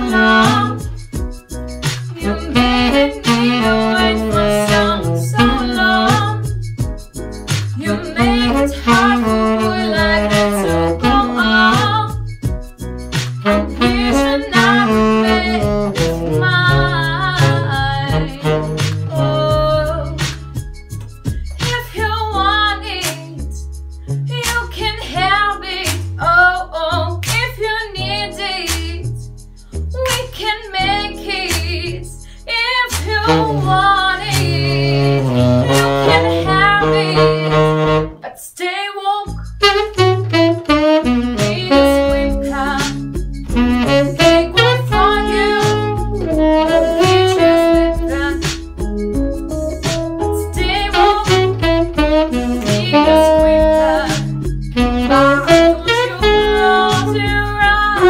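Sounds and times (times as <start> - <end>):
woman singing soul song: 0.0 - 1.0, 2.1 - 6.5, 7.7 - 12.2, 13.4 - 20.2, 21.6 - 23.6, 24.3 - 29.2, 30.0 - 48.6, 50.4 - 58.0
saxophone: 0.0 - 20.3, 33.0 - 38.4, 39.3 - 58.0
backing track with bass and guitar: 0.0 - 38.2, 39.3 - 58.0.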